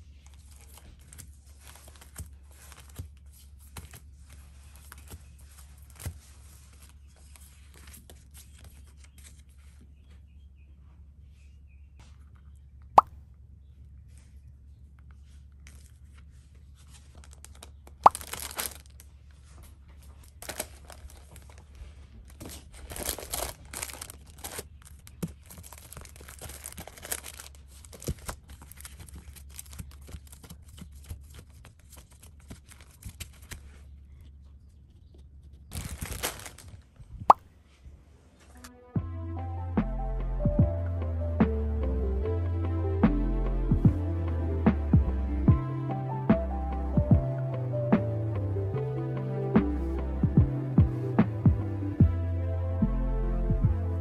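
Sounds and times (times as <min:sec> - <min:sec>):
faint room hum: 0:00.0 - 0:38.9
plastic bag crinkling: 0:16.8 - 0:31.0, 0:35.7 - 0:37.0.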